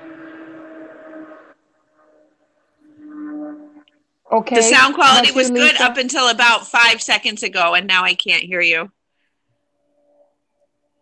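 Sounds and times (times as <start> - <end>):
low steady hum: 2.2 - 9.0.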